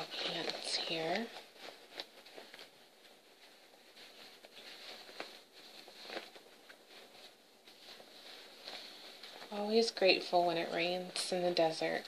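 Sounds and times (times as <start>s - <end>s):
cloth rustling: 0.0s - 12.0s.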